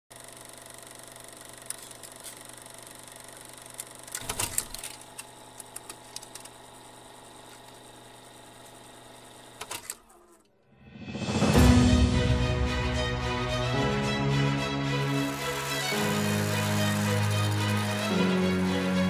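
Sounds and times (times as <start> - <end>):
steady mechanical hum: 0.1 - 10.6.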